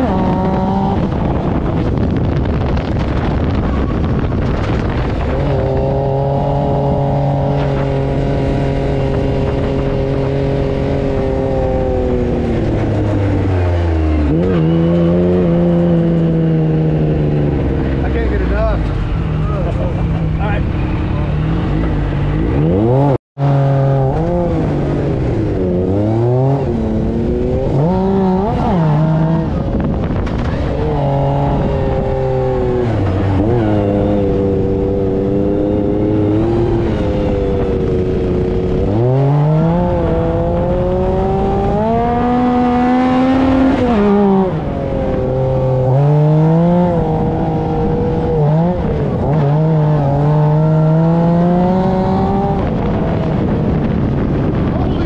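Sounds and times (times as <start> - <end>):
buggy engine revving: 0.0 - 55.0.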